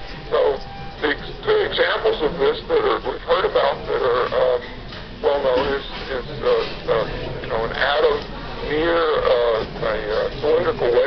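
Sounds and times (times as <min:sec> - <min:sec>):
man lecturing: 0:00.3 - 0:11.0.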